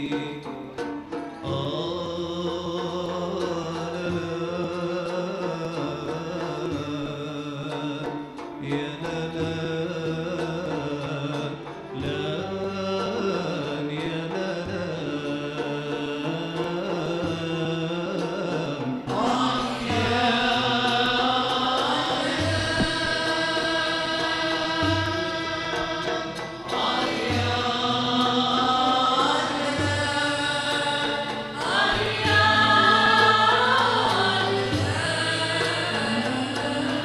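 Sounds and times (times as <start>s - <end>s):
chorus singing: 0.0s - 37.0s
oud accompaniment: 0.0s - 37.0s
low beat: 19.1s - 36.9s.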